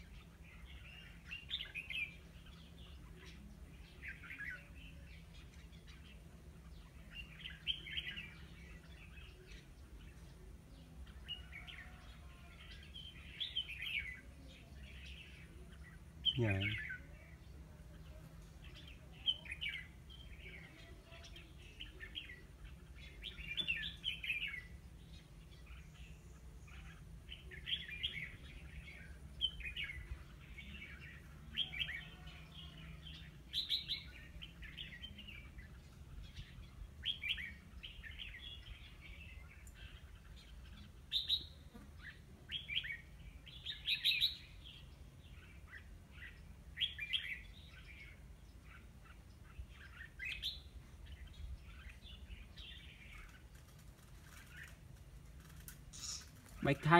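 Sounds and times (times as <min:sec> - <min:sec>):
bird singing chirpy phrases: 0:00.0 - 0:56.9.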